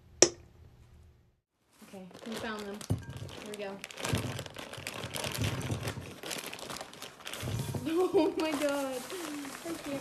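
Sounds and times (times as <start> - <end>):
crinkly plastic packaging: 1.7 - 10.0.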